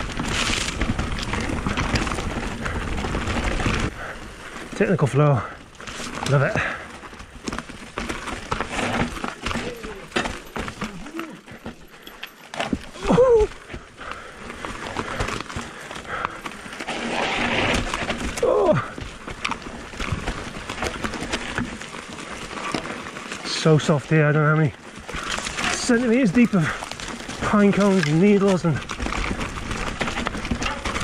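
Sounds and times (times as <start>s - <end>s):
bike rattling over rocks: 0.0s - 31.0s
tyres crunching on dry trail: 0.0s - 31.0s
rider's falling vocal sounds: 8.6s - 11.8s, 12.8s - 13.8s, 17.0s - 19.1s.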